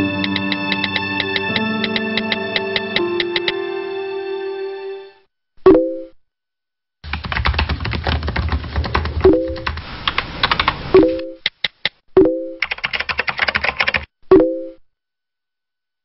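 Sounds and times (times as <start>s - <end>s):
computer keyboard typing: 0.1s - 3.6s, 7.0s - 12.0s, 12.6s - 14.1s.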